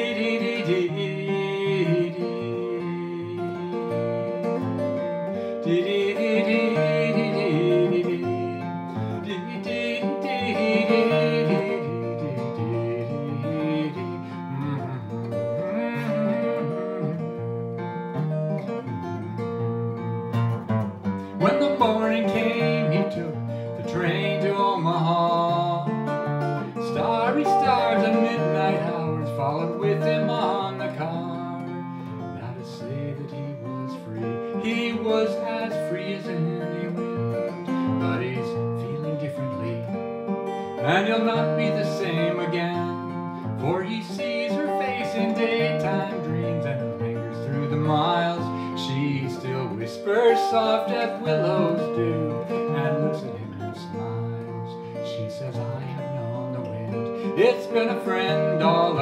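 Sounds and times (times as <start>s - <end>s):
acoustic guitar playing: 0.0s - 59.0s.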